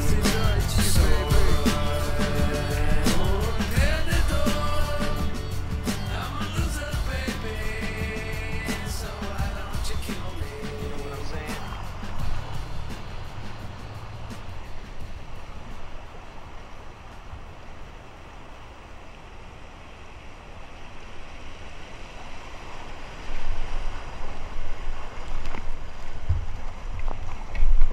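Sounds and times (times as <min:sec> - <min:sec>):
creek water rushing and splashing: 0:00.0 - 0:27.9
paddle strokes splashing: 0:00.0 - 0:27.9
wind rumble on microphone: 0:07.1 - 0:27.9.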